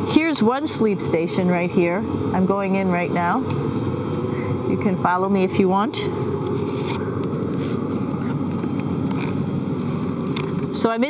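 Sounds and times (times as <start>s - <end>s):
ventilation fans whirring hum: 0.0s - 11.0s.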